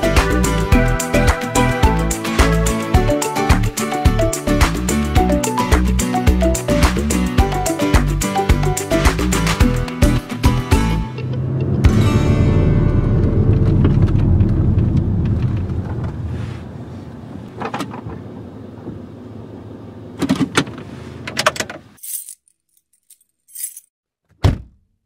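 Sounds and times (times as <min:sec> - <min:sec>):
car cabin road and engine noise: 0:10.7 - 0:22.0.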